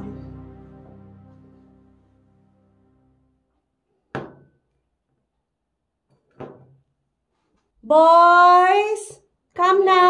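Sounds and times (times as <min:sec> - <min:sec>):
woman calling out loudly: 0:07.9 - 0:10.0.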